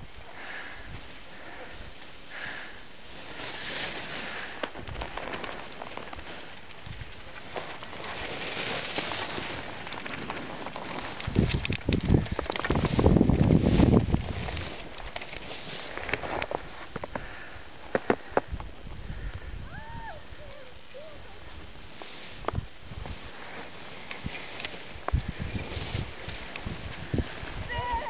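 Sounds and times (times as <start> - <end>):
skis scraping over snow: 0.2 - 19.6, 20.2 - 28.0
wind buffeting microphone: 11.2 - 15.0, 24.2 - 28.0.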